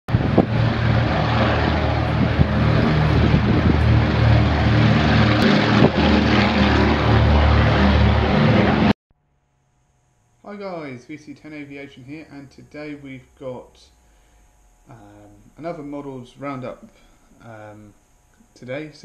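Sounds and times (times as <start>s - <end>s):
propeller aircraft engines: 0.1s - 9.0s.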